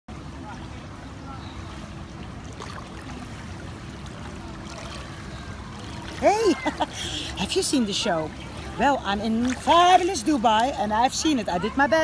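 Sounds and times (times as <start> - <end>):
faint distant voices: 0.1 - 12.0.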